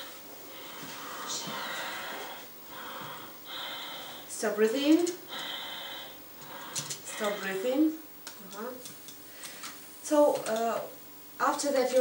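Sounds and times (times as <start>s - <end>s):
long hissing breath: 0.4s - 4.3s, 5.3s - 7.7s.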